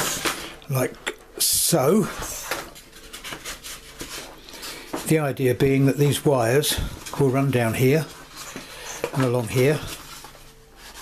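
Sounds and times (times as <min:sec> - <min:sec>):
faint rubbing scrapes: 0:02.2 - 0:05.2, 0:06.7 - 0:11.0.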